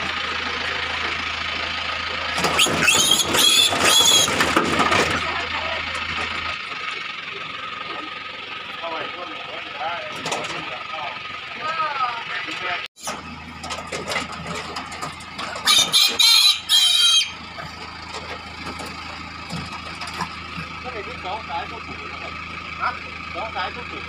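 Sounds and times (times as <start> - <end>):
pickup engine idling: 0.0 - 24.0
piglet squealing: 2.6 - 4.4, 15.6 - 17.4.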